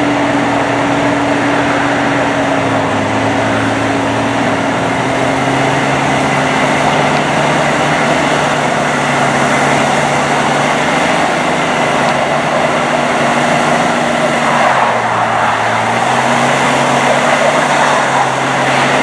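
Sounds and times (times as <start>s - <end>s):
vehicle engines humming: 0.0s - 19.0s.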